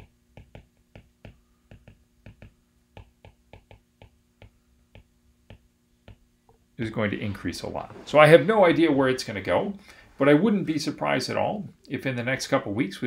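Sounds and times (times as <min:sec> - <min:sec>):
stylus tapping on glass screen: 0:00.0 - 0:06.2.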